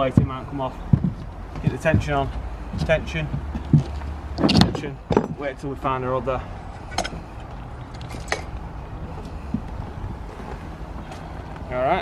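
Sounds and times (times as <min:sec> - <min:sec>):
wind rumble on microphone: 0:06.7 - 0:12.0.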